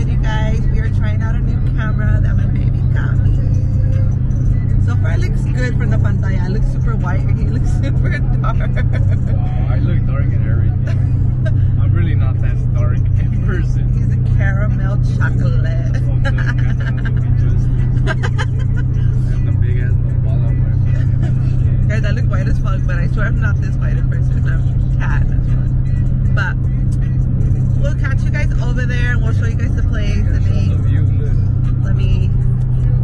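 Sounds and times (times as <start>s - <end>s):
car driving drone from inside: 0.0s - 33.0s
music: 0.0s - 33.0s
voices: 0.0s - 33.0s.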